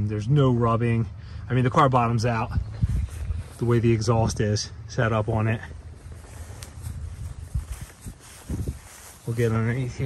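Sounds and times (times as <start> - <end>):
outdoor background hiss: 0.0 - 10.0
footsteps on asphalt: 5.6 - 10.0.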